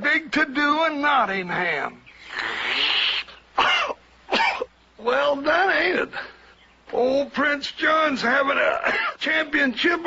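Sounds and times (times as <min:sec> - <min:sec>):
breathy hiss: 0:02.1 - 0:04.0
man clearing his throat: 0:03.6 - 0:04.7, 0:08.8 - 0:09.2.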